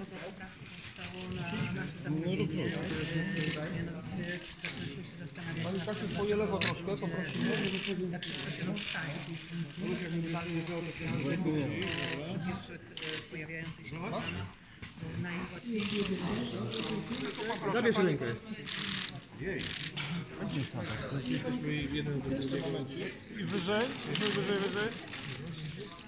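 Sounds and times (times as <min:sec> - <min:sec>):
background chatter: 0:00.0 - 0:26.0.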